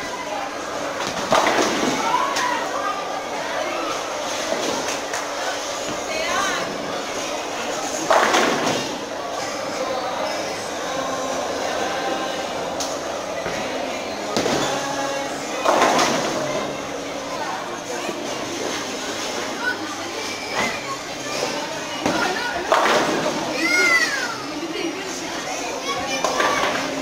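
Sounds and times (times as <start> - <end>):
background chatter: 0.0 - 27.0.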